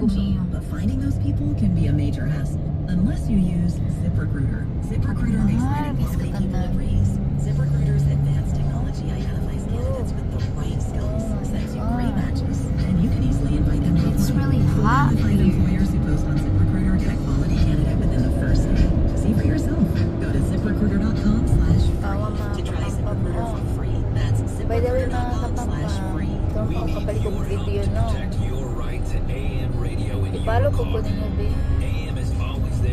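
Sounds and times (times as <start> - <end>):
car radio music and talk: 0.0 - 32.9
engine and road noise rumble: 0.0 - 32.9.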